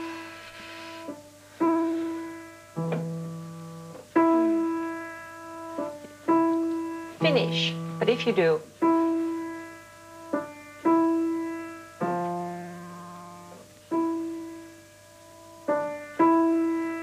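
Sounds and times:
grand piano sustained chords: 0:00.0 - 0:17.0.

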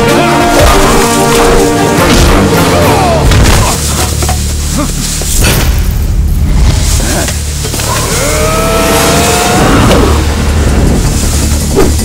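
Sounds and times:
low rumbling film score: 0:00.0 - 0:12.0.

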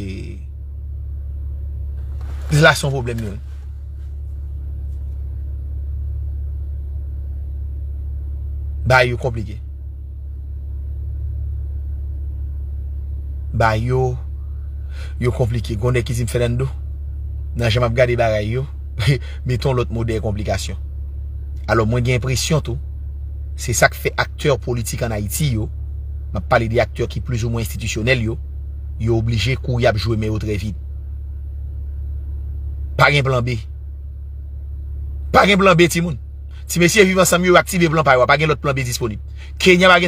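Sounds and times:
steady low rumble: 0:00.0 - 0:40.0.

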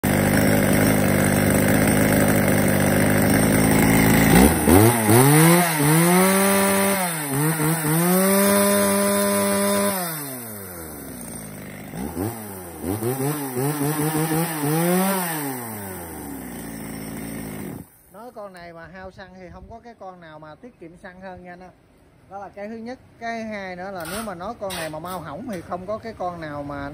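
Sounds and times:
chainsaw idling and revving: 0:00.0 - 0:18.2.

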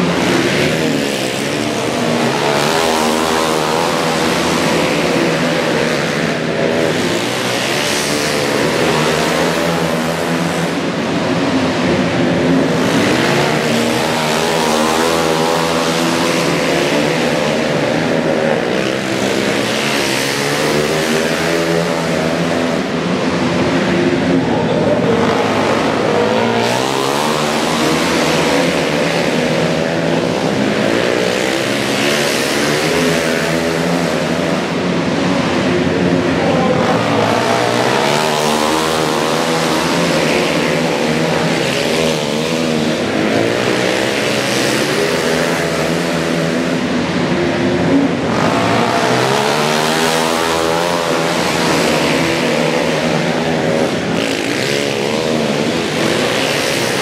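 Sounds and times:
motorcycles racing: 0:00.0 - 0:57.0.

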